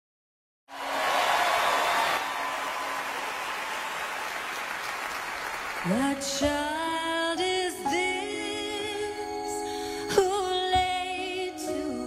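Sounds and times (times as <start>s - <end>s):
audience applause: 0.7s - 6.2s.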